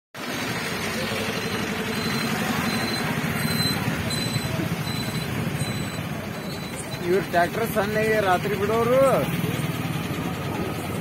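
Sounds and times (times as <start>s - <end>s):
truck engines idling: 0.2s - 11.0s.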